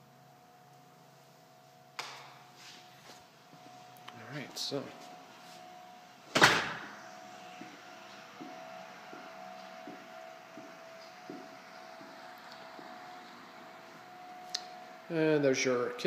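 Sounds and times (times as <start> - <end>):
faint steady hum: 0.0 - 16.0
door shutting with bang: 6.3 - 7.0.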